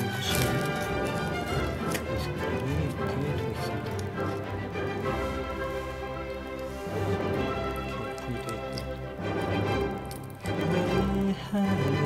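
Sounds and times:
instrumental music with sustained notes: 0.0s - 12.0s.

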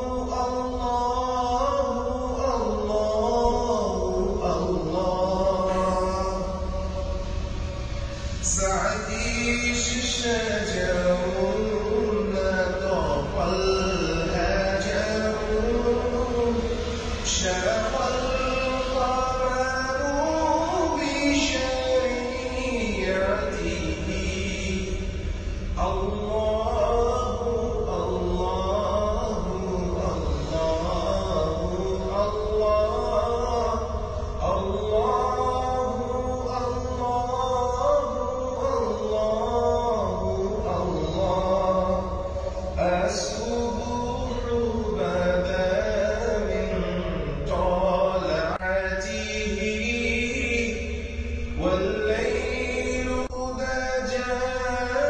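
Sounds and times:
steady low hum: 0.0s - 55.0s
voice chanting melody: 0.0s - 55.0s.

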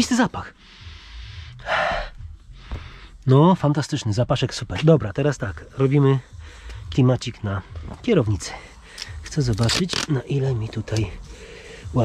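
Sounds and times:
soft breathing: 0.5s - 3.3s, 6.2s - 6.9s, 11.2s - 12.0s.

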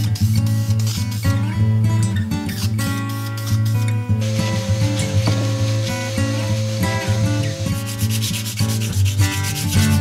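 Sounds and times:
acoustic guitar music: 0.0s - 10.0s
sandpaper sanding wood: 2.8s - 10.0s.

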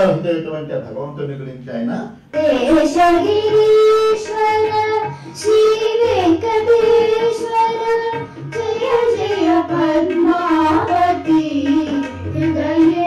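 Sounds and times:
tabla: 0.0s - 13.0s
woman and girls singing: 2.3s - 13.0s.

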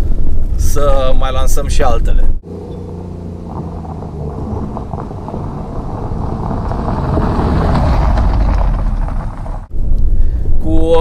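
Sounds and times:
car engine rumble: 1.5s - 10.7s
tyres crunching over gravel: 2.6s - 9.7s.

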